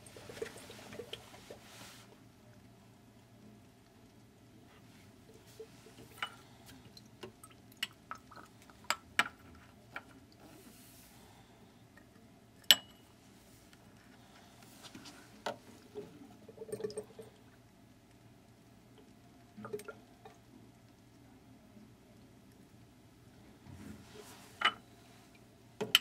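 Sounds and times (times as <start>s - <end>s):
liquid dripping: 2.6s - 10.5s, 15.5s - 21.3s
pipette clinking against glass: 12.6s - 13.0s.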